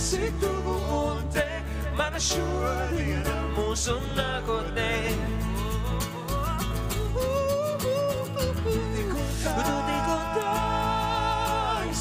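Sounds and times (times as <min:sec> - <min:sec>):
acoustic guitar strumming: 0:00.0 - 0:12.0
electric bass: 0:00.0 - 0:12.0
keyboard: 0:00.0 - 0:12.0
man singing: 0:00.0 - 0:12.0.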